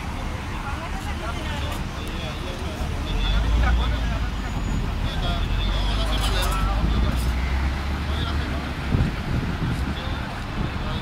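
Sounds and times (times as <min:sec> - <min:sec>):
people talking: 0:00.0 - 0:11.0
truck engine rumbling: 0:00.0 - 0:11.0.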